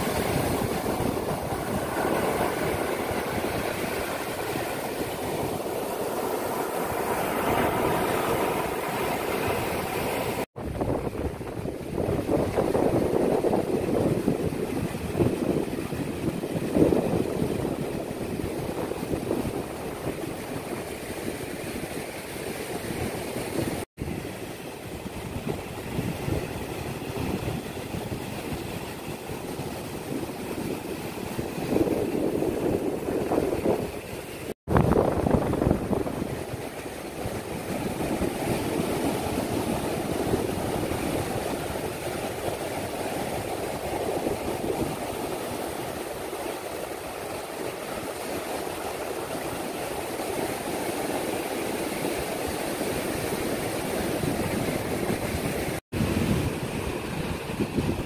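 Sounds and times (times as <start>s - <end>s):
surf breaking on beach: 0.0s - 58.0s
wind buffeting microphone: 0.0s - 58.0s.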